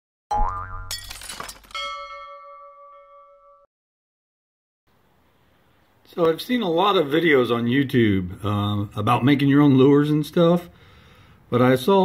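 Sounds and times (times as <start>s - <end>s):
springy boing with rising pitch: 0.3s - 1.0s
bell chime: 1.8s - 3.6s.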